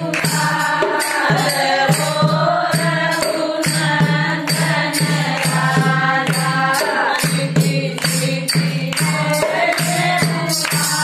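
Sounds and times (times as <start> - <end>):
steady percussive beat: 0.0 - 11.0
women singing together: 0.0 - 11.0.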